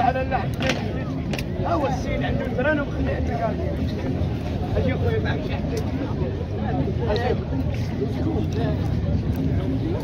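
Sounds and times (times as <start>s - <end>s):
crowd murmuring: 0.0s - 10.0s.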